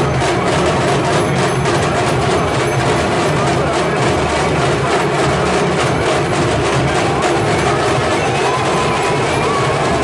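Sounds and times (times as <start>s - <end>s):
dhol drums beating fast: 0.0s - 10.0s.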